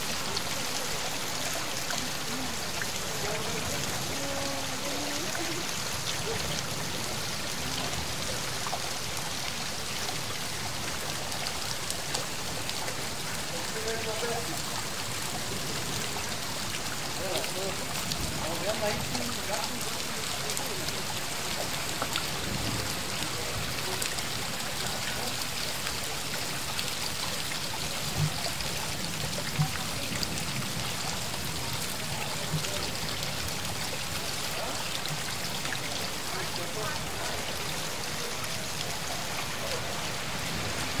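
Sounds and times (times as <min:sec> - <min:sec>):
steady rain hiss: 0:00.0 - 0:41.0
water dripping: 0:00.0 - 0:41.0.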